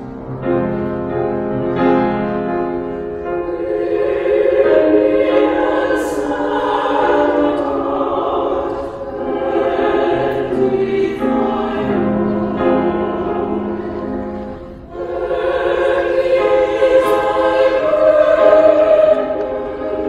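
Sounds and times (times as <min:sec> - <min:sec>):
mixed choir singing in harmony: 0:00.0 - 0:20.0.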